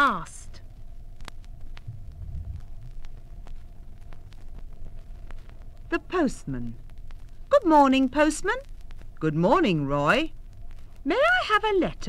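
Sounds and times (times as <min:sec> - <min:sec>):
vinyl record rumble and hum: 0:00.0 - 0:12.0
vinyl clicks and pops: 0:01.2 - 0:09.4.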